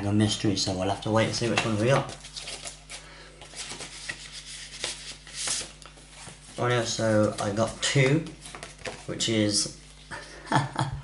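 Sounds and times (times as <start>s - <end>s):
paper envelope rustling: 1.2s - 9.4s.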